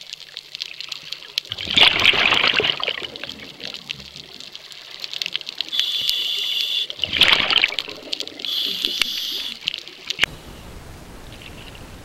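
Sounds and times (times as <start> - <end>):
exhaled bubbles underwater: 1.2 - 6.2, 6.8 - 10.3
regulator hissing inhalation: 5.7 - 7.0, 8.4 - 9.6.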